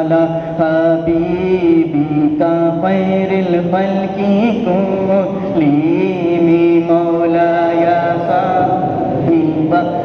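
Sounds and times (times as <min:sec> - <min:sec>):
man chanting slow devotional melody: 0:00.0 - 0:10.0.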